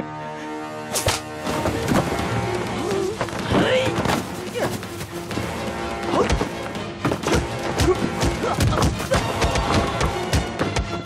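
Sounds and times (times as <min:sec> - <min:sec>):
action music: 0:00.0 - 0:11.0
scuffle of blows: 0:00.9 - 0:10.7.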